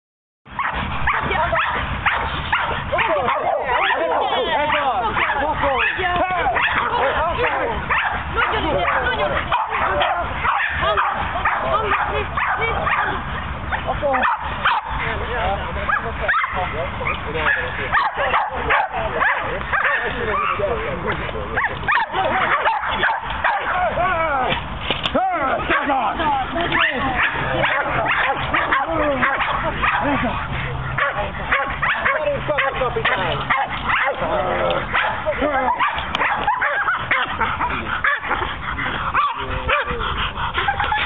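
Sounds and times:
small dogs barking and yipping: 0.5s - 15.2s, 15.8s - 20.9s, 21.5s - 41.0s.

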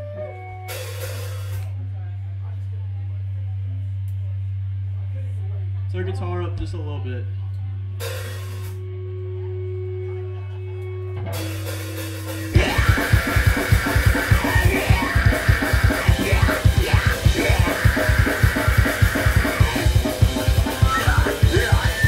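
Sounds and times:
distorted guitars: 10.7s - 22.0s
rapid kick drum hits: 12.5s - 22.0s
screamed vocals: 12.6s - 22.0s.

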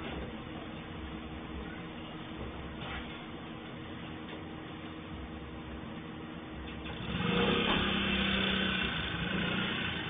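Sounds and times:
small motorcycle engine pulling away: 6.9s - 10.0s.

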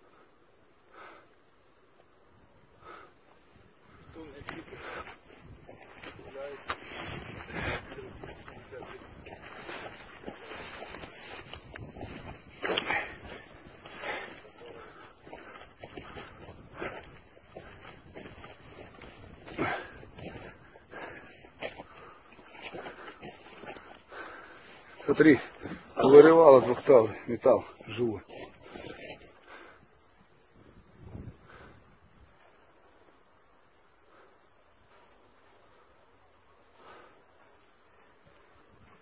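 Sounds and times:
faint outdoor background: 0.0s - 39.0s.

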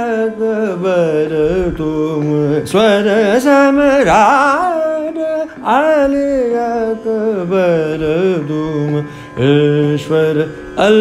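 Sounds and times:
man singing classical vocal line: 0.0s - 11.0s.

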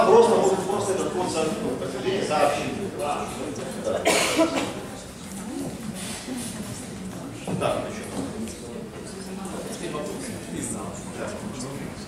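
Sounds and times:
loud short cough: 4.0s - 4.8s.

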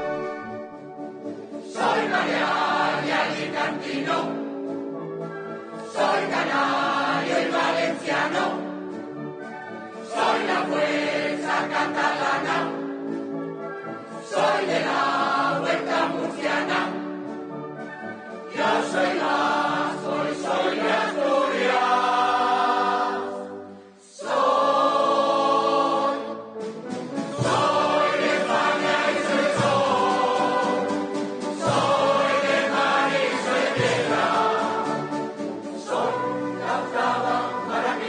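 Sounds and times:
mixed choir singing: 1.6s - 4.6s, 5.7s - 8.9s, 9.9s - 12.9s, 14.1s - 17.3s, 18.5s - 38.0s
concert band playing: 26.0s - 38.0s.

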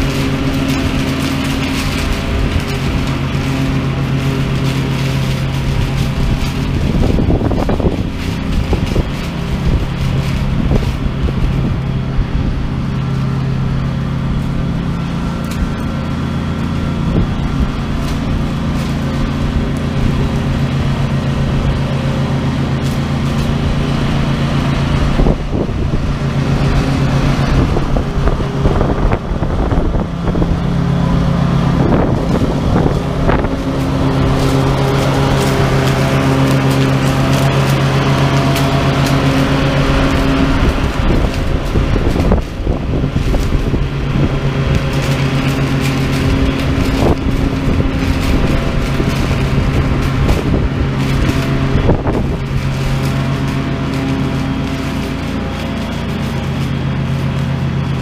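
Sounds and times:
mower engine running under load: 0.0s - 58.0s
crackles of pods: 32.2s - 58.0s.

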